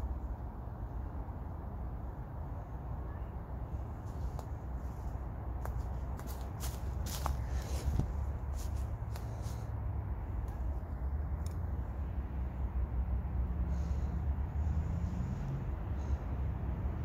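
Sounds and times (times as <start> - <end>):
steady low rumble: 0.0 - 17.0
footsteps through dry leaves: 4.0 - 9.7.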